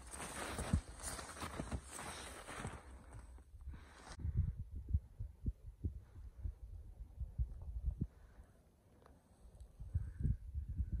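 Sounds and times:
footsteps crunching on snow: 0.0 - 4.2.

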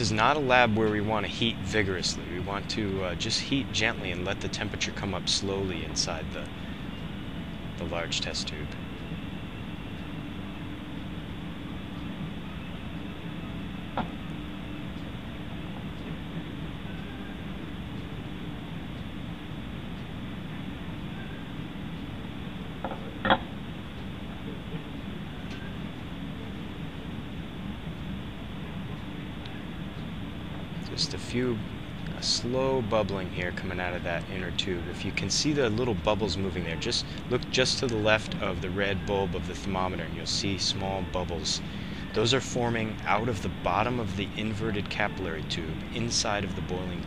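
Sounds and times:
bunsen burner flame: 0.0 - 47.0.

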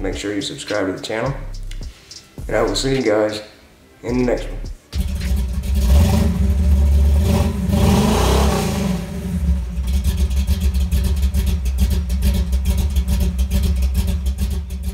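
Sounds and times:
car engine revving: 4.9 - 14.9.

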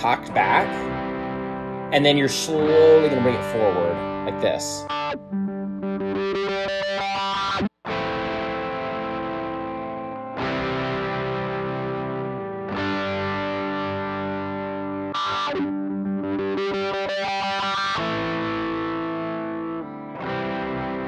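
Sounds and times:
electric guitar chord through wah: 0.0 - 21.0
strummed guitar chords ringing: 0.0 - 21.0.

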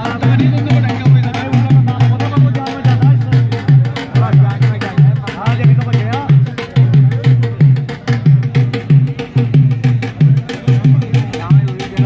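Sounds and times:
drum beaten in fast rhythm: 0.0 - 12.0.

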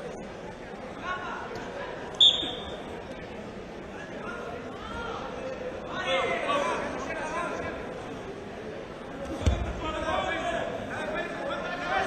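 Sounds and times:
crowd chatter: 0.0 - 12.0
referee's whistle blast: 2.2 - 2.8.

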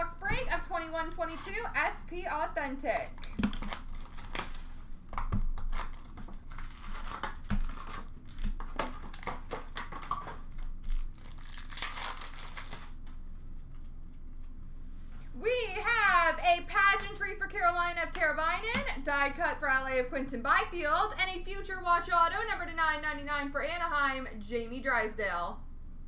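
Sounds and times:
card pack wrappers tearing: 3.0 - 13.2.

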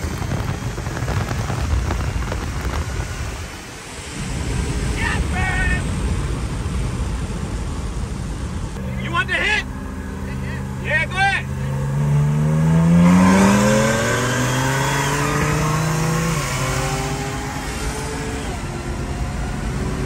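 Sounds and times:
car engine accelerating hard: 0.0 - 20.0.

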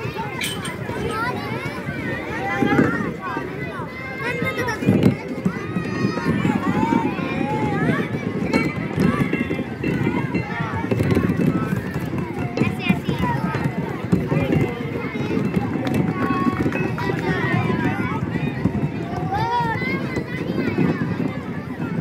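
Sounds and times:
children chattering: 0.0 - 22.0.

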